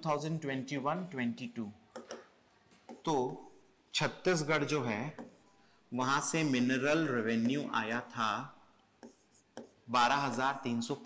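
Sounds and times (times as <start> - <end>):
stylus tapping on screen: 1.9 - 3.4, 9.0 - 9.8.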